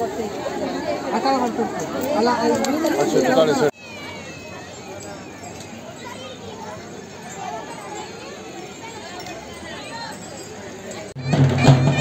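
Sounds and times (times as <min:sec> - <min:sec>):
children calling: 0:00.0 - 0:12.0
distant chatter of voices: 0:00.0 - 0:12.0.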